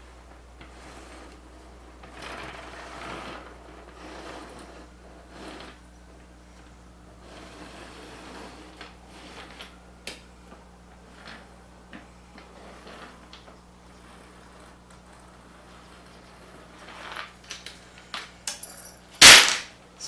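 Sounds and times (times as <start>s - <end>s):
pencil dragged on wood: 0.6s - 5.8s, 7.2s - 9.6s, 12.4s - 17.2s
metal chain clinking on boards: 18.4s - 19.7s
loud sharp clack: 19.2s - 19.8s.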